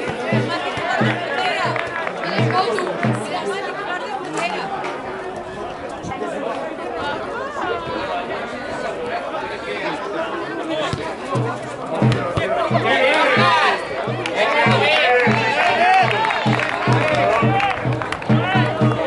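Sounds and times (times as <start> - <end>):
people calling and shouting: 0.0 - 19.0
voices chattering: 0.0 - 19.0.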